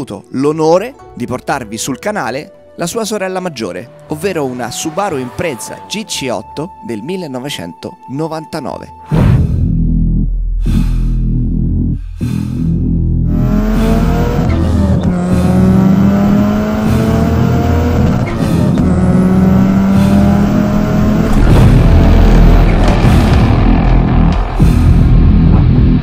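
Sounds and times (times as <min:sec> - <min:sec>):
car engine accelerating: 0:10.7 - 0:26.0.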